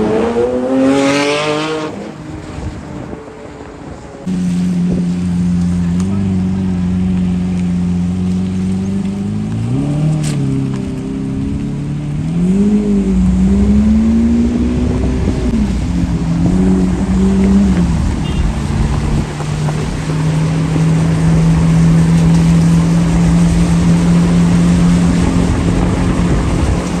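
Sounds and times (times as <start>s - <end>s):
car engine idling and revving: 0.0s - 27.0s.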